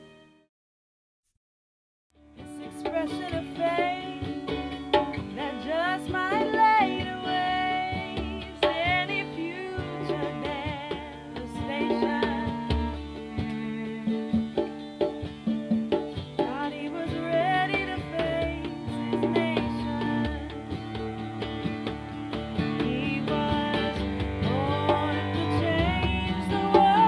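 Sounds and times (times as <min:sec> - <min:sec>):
acoustic guitar strummed: 0:02.2 - 0:27.0
woman singing: 0:02.4 - 0:14.4, 0:16.4 - 0:21.6, 0:22.5 - 0:27.0
hand drum: 0:02.4 - 0:27.0.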